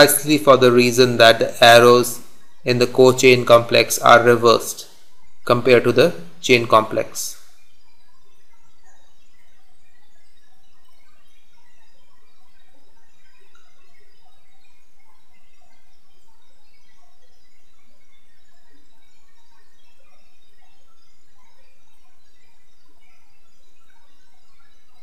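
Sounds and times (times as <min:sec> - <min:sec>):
faint chirp-like blips: 0:00.0 - 0:25.0
steady background hiss: 0:00.0 - 0:25.0.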